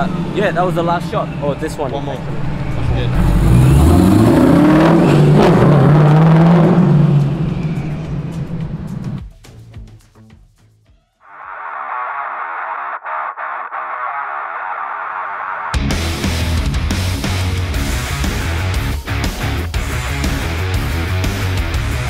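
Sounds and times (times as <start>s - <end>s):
car engine accelerating: 0.0s - 9.2s, 11.8s - 22.0s
heavy rock music: 12.0s - 22.0s.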